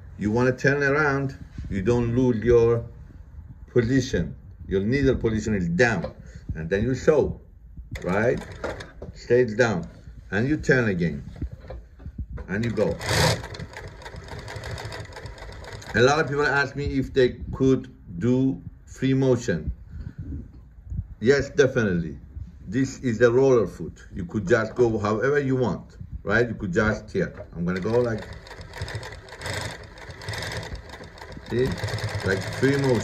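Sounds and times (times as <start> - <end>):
sewing machine stitching: 8.0 - 9.1, 12.6 - 16.4, 27.2 - 33.0.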